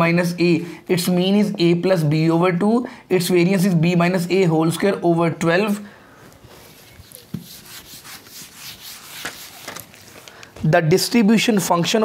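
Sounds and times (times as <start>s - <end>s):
eraser wiping whiteboard: 6.5s - 9.9s.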